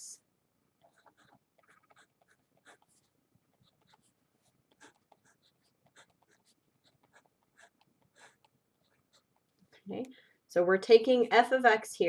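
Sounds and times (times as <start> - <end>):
pen scratching on paper: 0.8 - 9.5.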